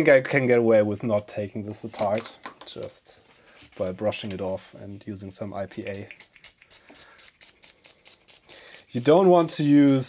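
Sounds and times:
spray bottle squirting: 0:05.7 - 0:10.0.

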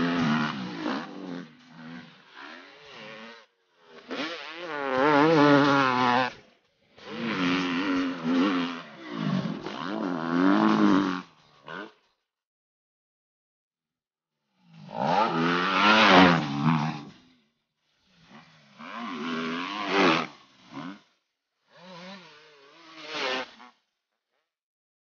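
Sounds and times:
dirt bike engine revving: 0:00.0 - 0:12.0, 0:14.6 - 0:17.4, 0:18.1 - 0:23.8.

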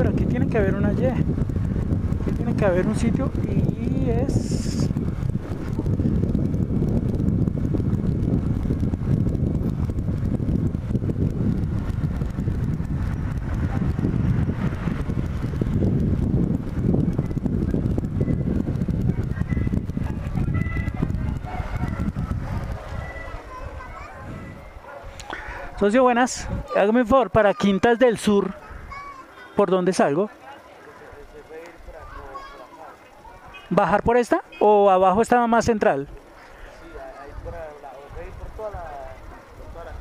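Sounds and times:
wind rush on microphone: 0:00.0 - 0:30.1, 0:33.2 - 0:40.0.

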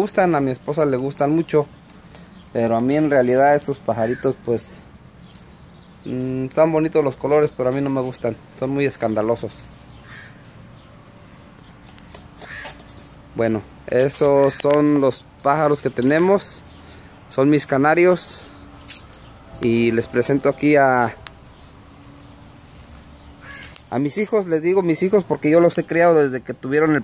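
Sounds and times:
caged birds chirping: 0:00.0 - 0:27.0
chicks raspy begging call: 0:03.0 - 0:04.9, 0:09.8 - 0:11.0, 0:23.1 - 0:23.9.

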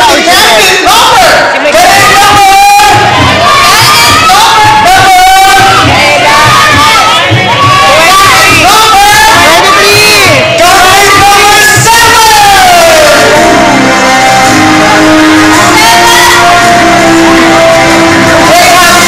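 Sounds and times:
audience screaming and cheering: 0:00.0 - 0:19.0.

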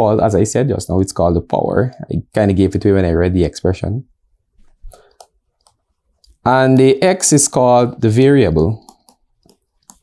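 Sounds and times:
stylus tapping on tablet screen: 0:04.9 - 0:06.4, 0:08.8 - 0:10.0.

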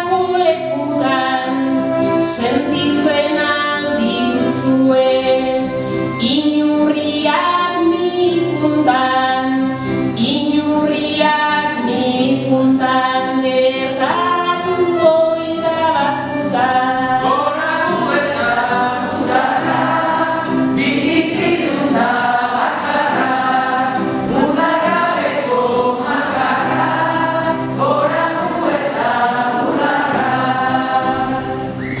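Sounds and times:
acoustic guitar: 0:00.0 - 0:32.0
women singing together: 0:00.0 - 0:32.0.

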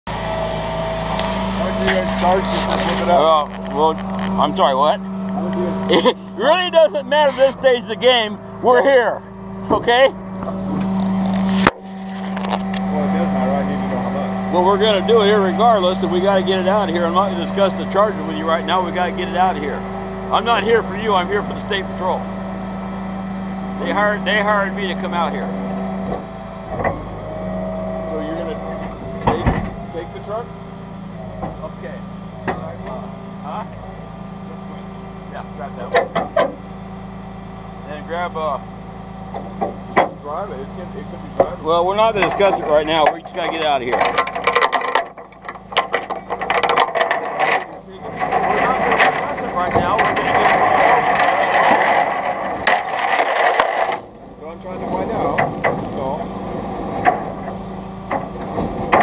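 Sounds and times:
hydraulic whine: 0:00.1 - 0:59.0
vehicle engine idling: 0:00.1 - 0:59.0.

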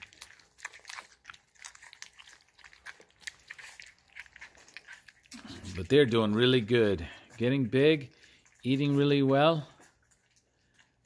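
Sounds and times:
faint smacking and licking: 0:00.0 - 0:11.0
puppies eating wet food: 0:00.0 - 0:11.0.

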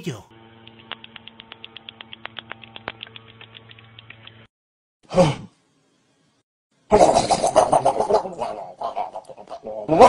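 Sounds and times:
rapid faint clicks: 0:00.6 - 0:04.5.

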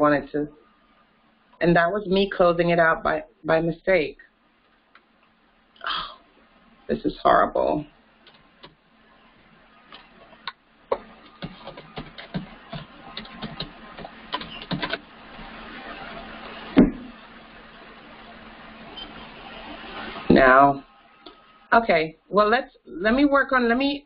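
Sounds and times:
steady hiss: 0:08.0 - 0:21.7
computer keyboard typing: 0:08.2 - 0:08.8, 0:10.9 - 0:15.0.

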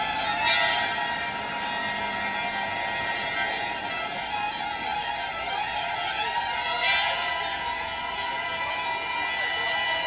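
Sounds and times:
violin music with held notes: 0:00.0 - 0:10.0.

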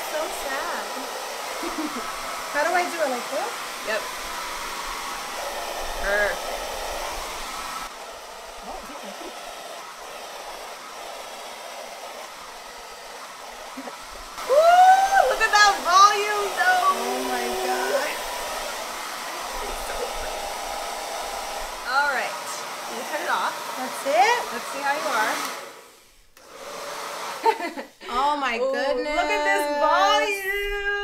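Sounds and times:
hair dryer running: 0:00.0 - 0:28.4
person speaking: 0:15.1 - 0:18.3, 0:28.0 - 0:31.0.

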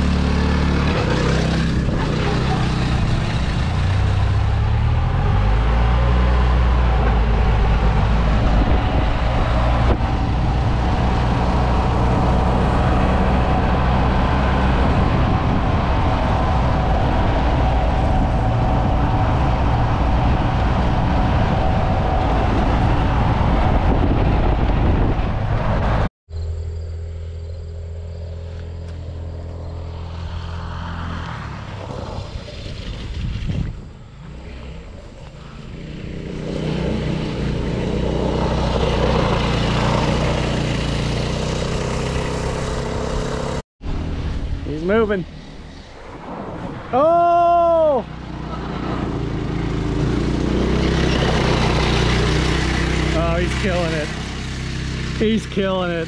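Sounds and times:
kart passing on gravel: 0:00.0 - 0:04.6, 0:28.3 - 0:44.1, 0:47.9 - 0:56.0
go-kart engine running: 0:00.0 - 0:05.5, 0:34.1 - 0:44.1, 0:48.1 - 0:56.0.

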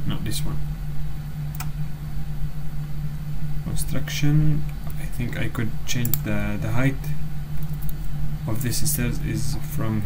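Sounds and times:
low background hum: 0:00.0 - 0:10.0
computer mouse click: 0:01.5 - 0:01.7.

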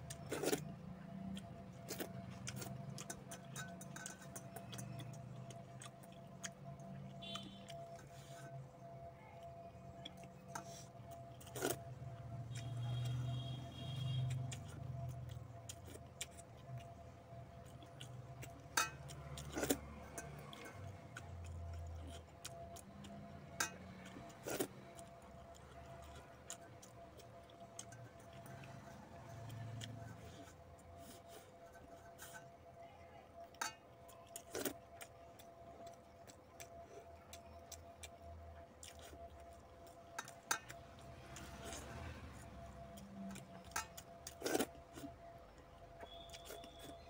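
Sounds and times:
light clicks on steel bowls: 0:02.5 - 0:05.6, 0:18.7 - 0:21.0, 0:33.5 - 0:34.4, 0:40.1 - 0:41.8.

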